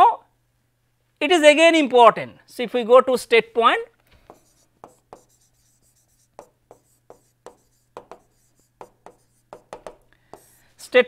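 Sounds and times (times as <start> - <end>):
stylus tapping on tablet screen: 4.2 - 10.6.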